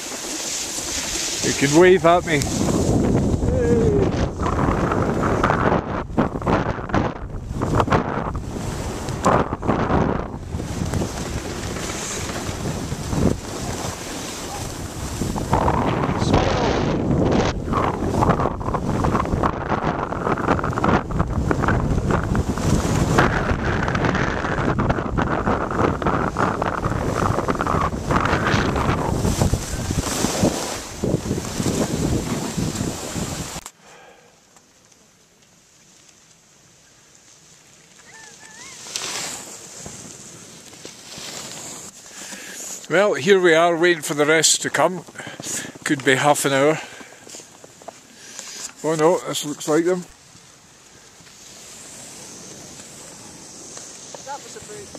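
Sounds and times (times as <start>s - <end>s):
skis scraping on snow: 0.0s - 34.1s, 35.5s - 54.9s
wind buffeting microphone: 0.8s - 33.6s.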